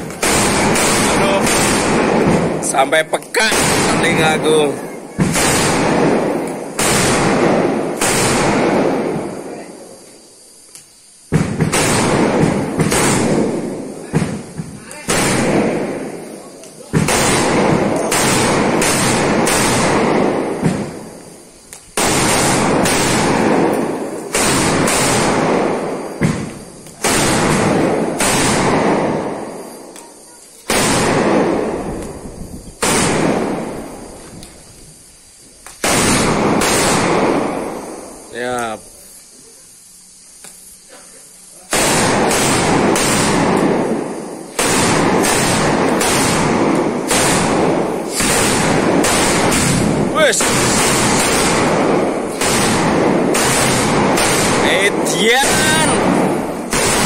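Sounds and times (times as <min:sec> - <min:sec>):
firecrackers banging: 0:00.0 - 0:57.0.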